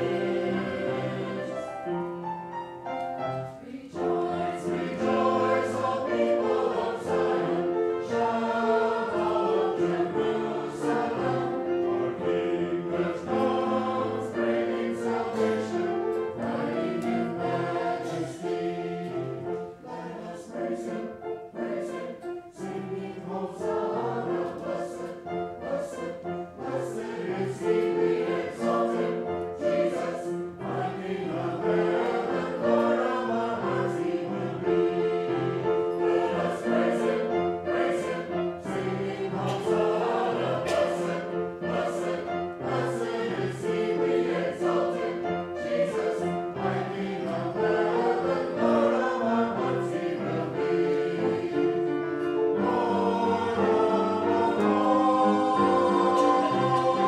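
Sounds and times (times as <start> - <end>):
choir singing in harmony: 0.0 - 57.0.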